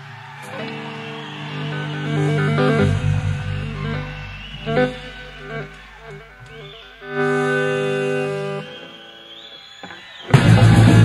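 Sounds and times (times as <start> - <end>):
high gliding guitar tone: 0.0 - 9.1
electric guitar chord: 0.5 - 8.6.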